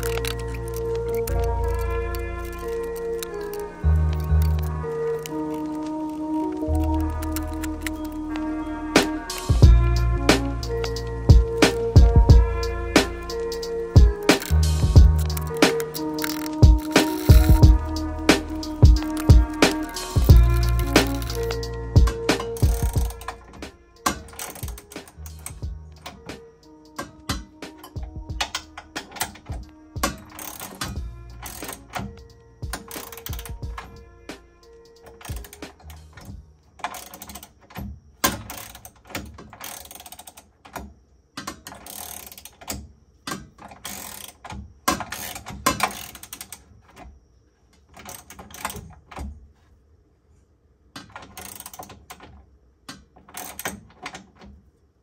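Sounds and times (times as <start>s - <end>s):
background music sustained notes: 0.0s - 37.4s
ratchet wrench clicking: 13.0s - 26.3s, 26.9s - 33.9s, 35.0s - 37.5s, 38.2s - 40.5s, 41.4s - 46.6s, 51.3s - 51.9s
heavy low thump: 16.6s - 17.9s.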